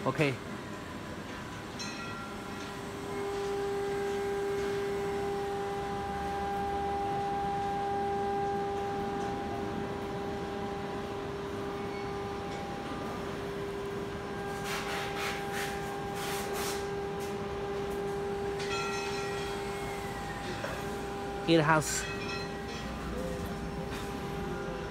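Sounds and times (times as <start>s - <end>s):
electronic drone: 2.5s - 16.2s.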